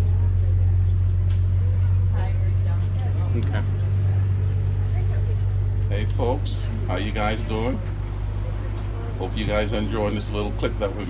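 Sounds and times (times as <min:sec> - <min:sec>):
faint voices: 0:00.0 - 0:11.0
vehicle engine idling: 0:00.0 - 0:11.0.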